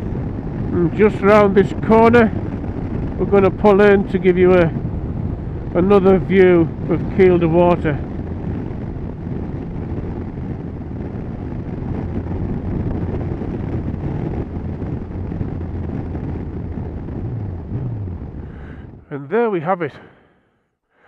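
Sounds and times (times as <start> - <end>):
wind and road noise: 0.0 - 20.3
motorcycle engine running: 1.8 - 19.1.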